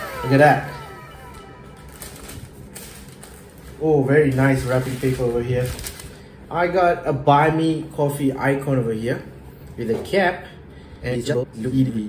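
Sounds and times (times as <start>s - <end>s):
celebration sound effect: 0.0s - 2.6s.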